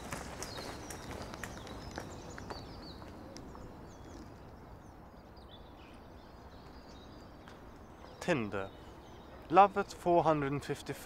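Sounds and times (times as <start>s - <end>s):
footsteps on paved path: 0.0s - 4.6s
small birds chirping: 0.0s - 11.0s.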